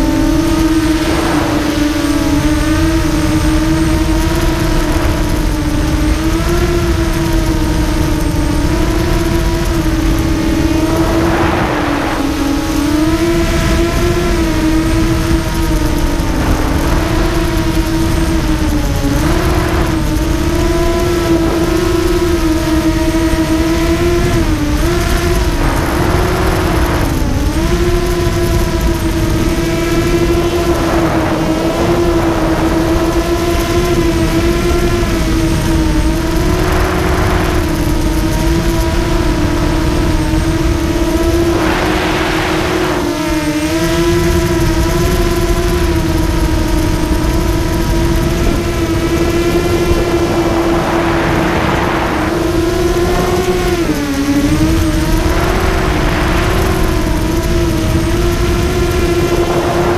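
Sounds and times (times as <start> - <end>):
rushing air noise: 0.0 - 6.0, 7.7 - 23.0, 24.2 - 38.3, 39.0 - 44.7, 46.2 - 59.9
high motor whine: 0.0 - 59.9.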